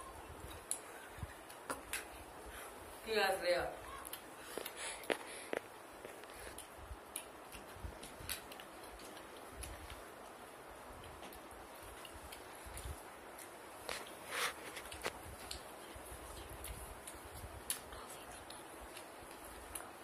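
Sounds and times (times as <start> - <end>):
steady room hiss: 0.0 - 20.0.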